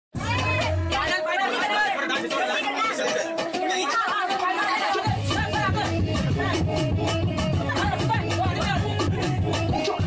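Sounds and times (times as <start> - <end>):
crowd chattering: 0.2 - 10.0.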